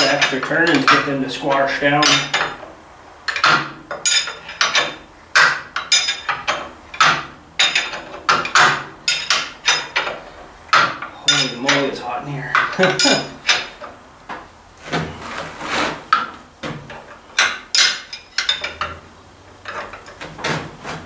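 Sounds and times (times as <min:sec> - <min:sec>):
wrench clinking on a bolt: 0:02.0 - 0:02.6, 0:03.3 - 0:11.9, 0:12.6 - 0:13.8, 0:17.4 - 0:18.9.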